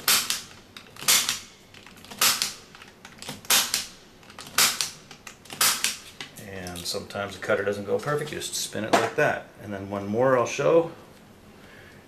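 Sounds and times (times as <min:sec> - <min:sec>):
punch-down tool snapping: 0:00.0 - 0:01.5, 0:02.1 - 0:02.6, 0:03.2 - 0:06.0.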